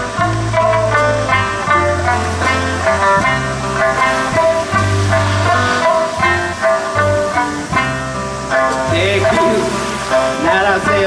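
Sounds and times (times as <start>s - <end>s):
bass notes: 0.0s - 11.0s
drums: 0.0s - 11.0s
plucked-string melody: 0.0s - 11.0s
strummed guitars: 0.0s - 11.0s.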